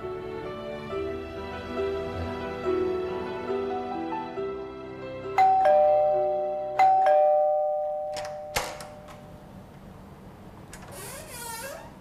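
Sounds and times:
two-note doorbell chime: 0:05.4 - 0:09.4
brief creak: 0:10.7 - 0:12.0.

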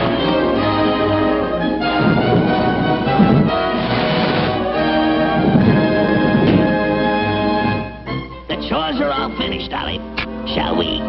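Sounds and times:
orchestral cartoon music: 0:00.0 - 0:11.0.

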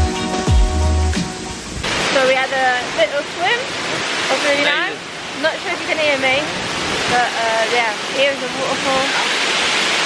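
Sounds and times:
background music with bass beat: 0:00.0 - 0:01.6
waterfall rushing: 0:00.0 - 0:10.0
voices: 0:02.1 - 0:09.4.

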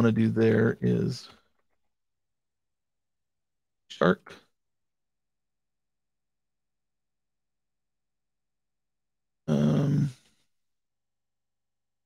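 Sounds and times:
man grunting: 0:09.5 - 0:10.2.

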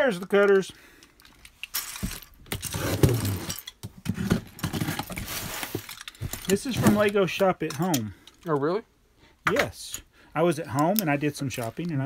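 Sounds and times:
cardboard and tape rustling: 0:01.6 - 0:07.4.

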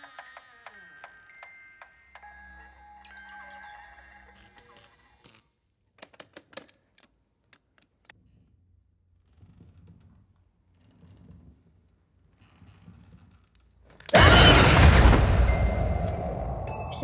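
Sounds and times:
eerie music tones: 0:14.2 - 0:17.0.

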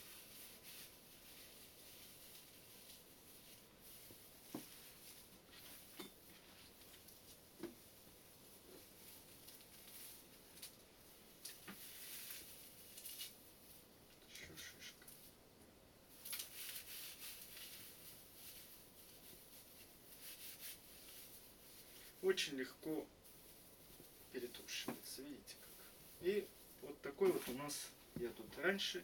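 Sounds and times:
dry moss rustling in hands: 0:00.0 - 0:29.0.

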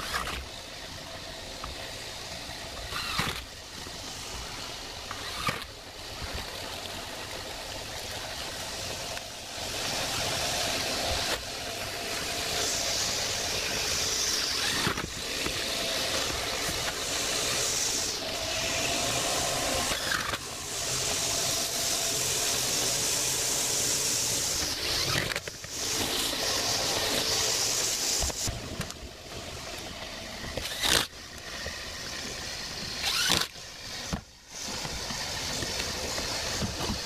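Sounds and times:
electric drill running: 0:00.0 - 0:37.0
steady rushing noise: 0:00.0 - 0:37.0.

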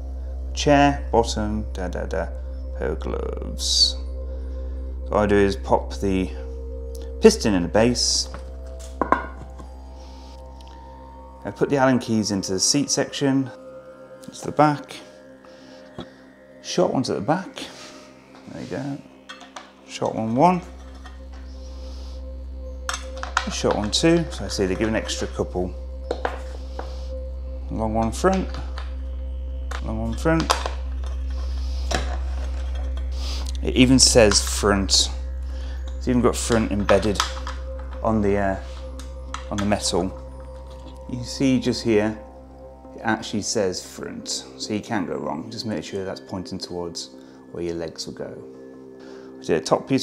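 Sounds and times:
steady low hum: 0:00.0 - 0:50.0.

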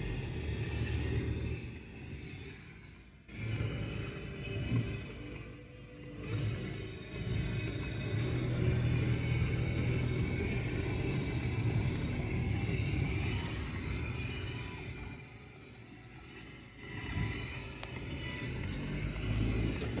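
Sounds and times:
car engine rumble from inside cabin: 0:00.0 - 0:20.0.

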